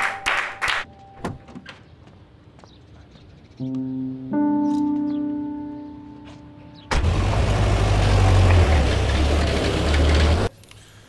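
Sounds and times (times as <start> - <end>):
jeep engines rumbling: 6.9 - 10.5.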